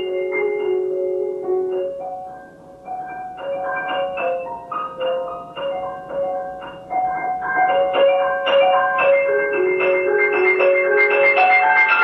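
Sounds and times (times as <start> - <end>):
solo grand piano playing: 0.0 - 12.0.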